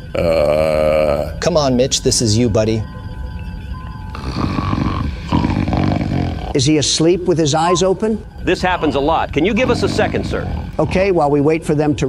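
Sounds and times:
man snoring: 0:00.0 - 0:01.4, 0:04.1 - 0:06.9, 0:08.8 - 0:11.2.

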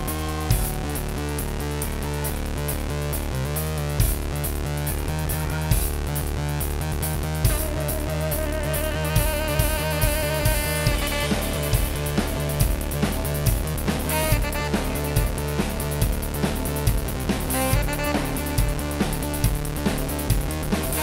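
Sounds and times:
drum kit beat: 0:00.0 - 0:21.0.

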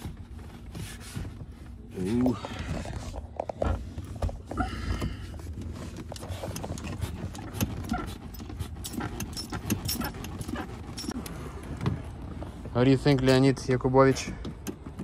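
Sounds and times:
clutch pedal clicks and knocks: 0:03.4 - 0:12.1, 0:13.0 - 0:15.0
pedal squeaks: 0:06.2 - 0:11.2.

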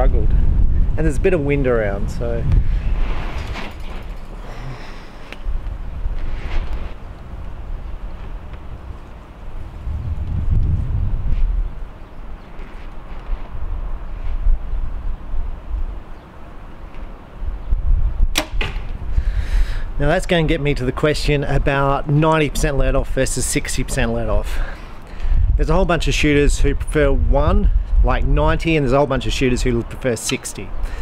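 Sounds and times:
low wind rumble on microphone: 0:00.0 - 0:29.9
bow string snap: 0:18.3 - 0:19.0.

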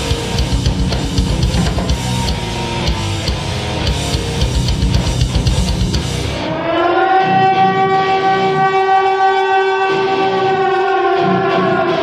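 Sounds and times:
low bass notes: 0:00.0 - 0:06.7
air-raid siren wailing: 0:06.4 - 0:12.0.

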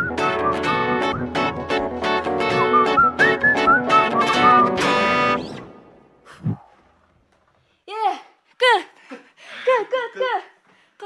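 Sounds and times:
whistle-like lead melody: 0:00.0 - 0:05.7
plucked guitar chords: 0:00.0 - 0:06.0.

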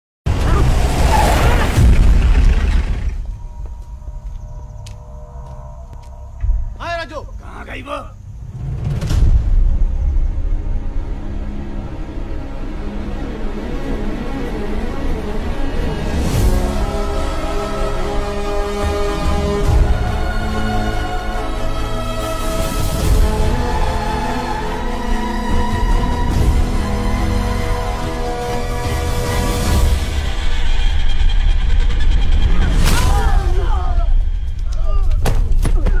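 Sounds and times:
suspenseful film score music: 0:00.3 - 0:36.0.

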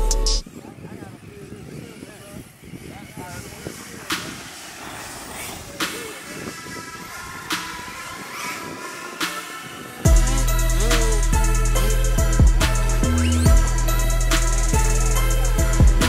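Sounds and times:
distant voices: 0:00.0 - 0:16.0
electric rc cars racing on dirt: 0:00.0 - 0:16.0.

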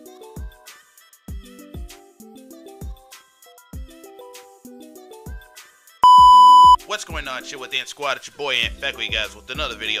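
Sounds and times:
loud steady bleep tone: 0:06.0 - 0:06.8.

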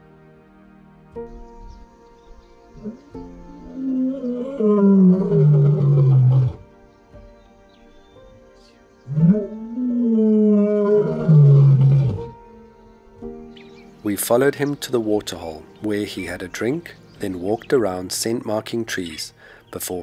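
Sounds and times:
soft background music: 0:00.0 - 0:20.0
lion roaring: 0:03.6 - 0:06.6, 0:09.1 - 0:12.4.

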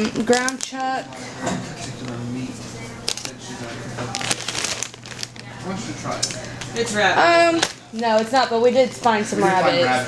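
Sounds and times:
plastic wrapping crinkling: 0:00.0 - 0:01.3, 0:01.9 - 0:09.2.

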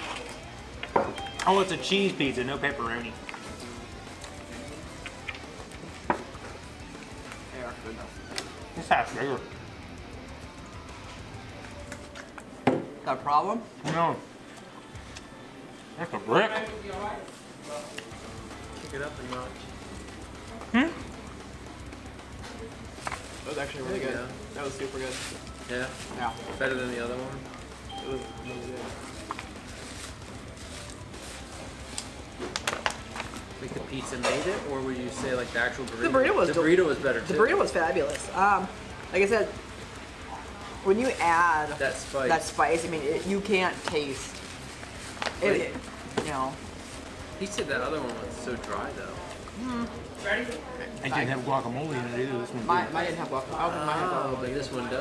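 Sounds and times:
faint background music: 0:00.0 - 0:55.0
plastic bottle crackling: 0:28.8 - 0:33.5.

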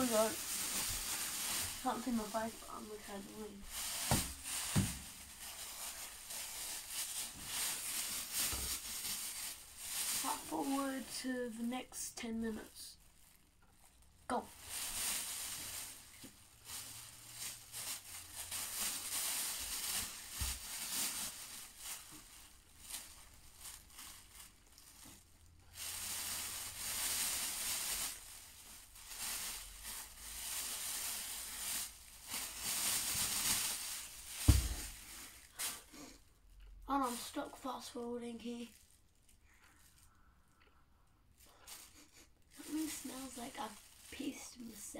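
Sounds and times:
plastic bag crinkling: 0:00.0 - 0:11.6, 0:12.2 - 0:40.7, 0:41.4 - 0:44.9
thump: 0:34.4 - 0:34.9.

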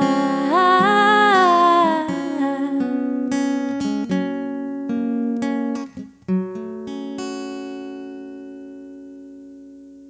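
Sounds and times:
acoustic guitar chord ringing: 0:00.0 - 0:10.0.

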